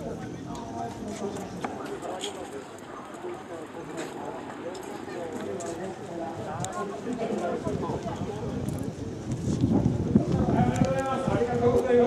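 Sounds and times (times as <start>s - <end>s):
people talking: 0.0s - 12.0s
wind buffeting microphone: 6.2s - 12.0s.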